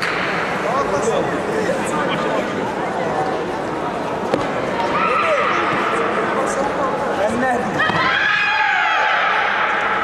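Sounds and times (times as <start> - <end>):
people shouting and yelling: 4.7 - 10.0.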